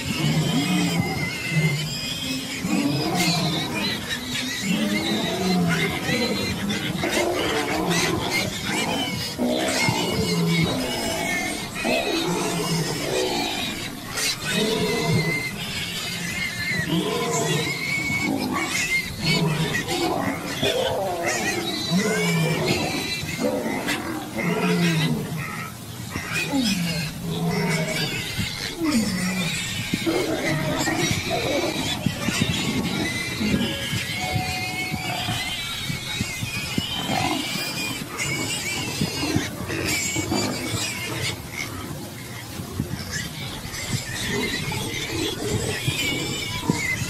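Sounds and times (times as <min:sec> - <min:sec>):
harsh animal cries: 0:00.0 - 0:47.0
warthog squealing: 0:00.0 - 0:47.0.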